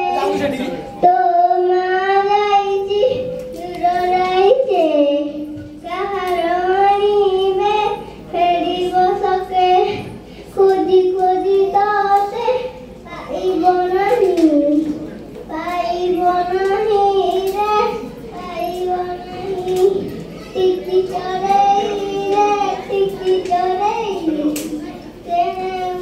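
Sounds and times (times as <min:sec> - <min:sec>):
girl singing into a microphone: 0:00.0 - 0:26.0.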